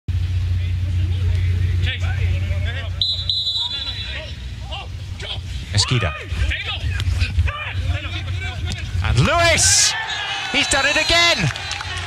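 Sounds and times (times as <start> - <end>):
steady low hum: 0.1 - 10.3
players shouting: 2.1 - 12.0
referee's whistle blast: 3.0 - 4.3.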